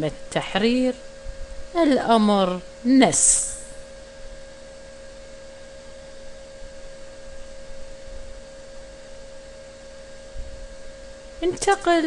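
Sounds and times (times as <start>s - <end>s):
steady tonal hum: 0.0s - 12.0s.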